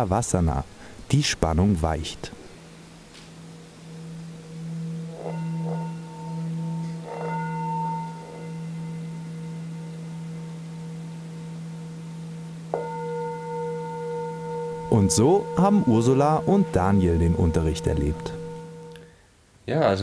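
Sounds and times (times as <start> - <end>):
singing bowl ringing: 2.2 - 19.2.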